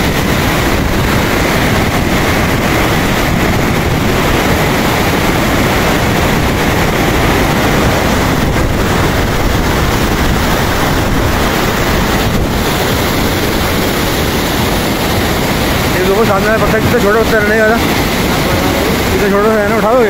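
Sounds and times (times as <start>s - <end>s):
stream rushing over boulders: 0.0s - 20.0s.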